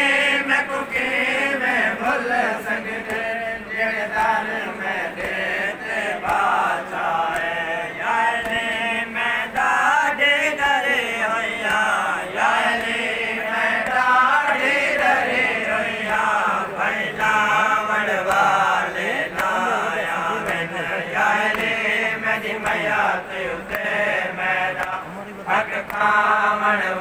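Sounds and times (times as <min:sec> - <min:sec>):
men chanting a devotional song: 0:00.0 - 0:27.0.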